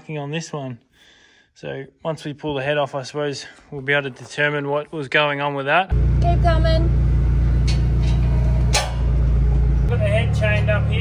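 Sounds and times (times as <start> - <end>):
forklift engine running: 5.9 - 11.0.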